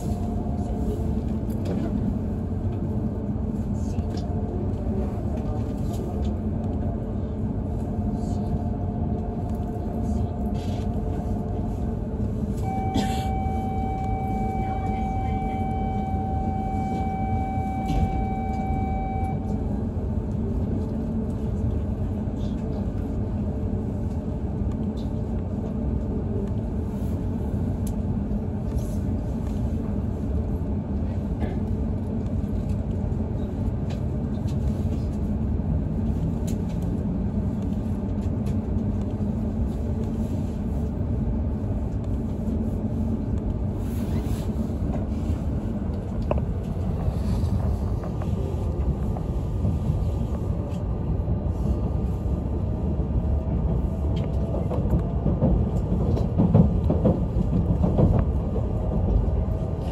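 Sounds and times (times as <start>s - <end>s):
train interior low rumble: 0.0s - 59.9s
steady tone: 12.6s - 19.6s.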